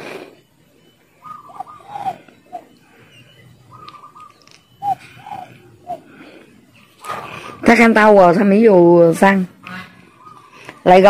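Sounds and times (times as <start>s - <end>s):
dove cooing: 0.6s - 8.0s, 10.0s - 11.0s.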